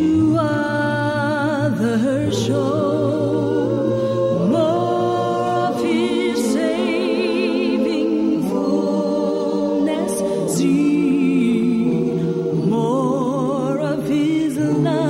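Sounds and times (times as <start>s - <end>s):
choir singing chords: 0.0s - 15.0s
woman singing with vibrato: 0.0s - 15.0s.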